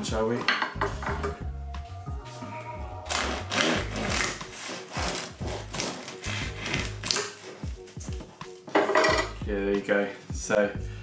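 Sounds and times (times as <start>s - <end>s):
background music: 0.0s - 11.0s
bread knife sawing through crust: 3.1s - 7.6s.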